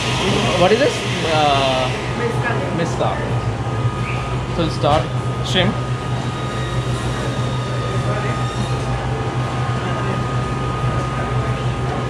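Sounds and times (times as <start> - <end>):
high whine: 0.0 - 12.0
low machine hum: 0.0 - 12.0
noisy background: 0.0 - 12.0.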